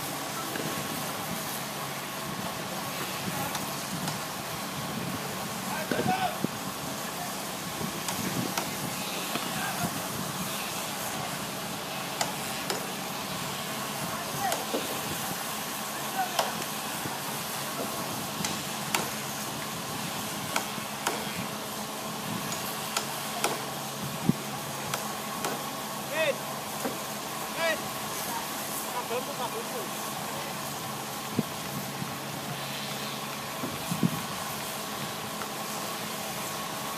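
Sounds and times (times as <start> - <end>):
workers shouting: 5.6 - 6.5, 27.5 - 30.6.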